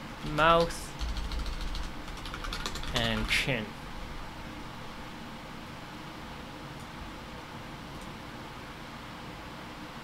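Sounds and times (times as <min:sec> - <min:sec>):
computer keyboard typing: 0:00.3 - 0:03.5.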